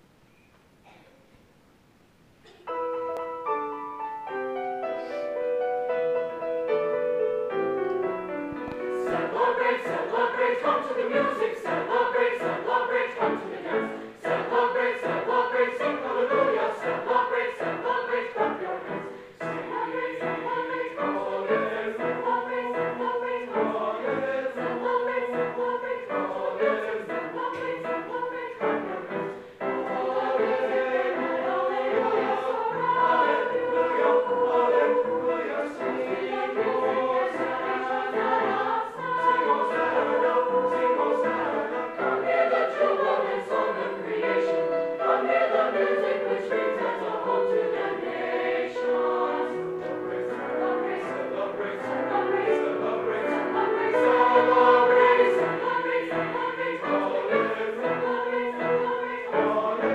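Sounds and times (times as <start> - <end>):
piano accompaniment: 2.6 - 59.9
choir singing: 4.3 - 59.9.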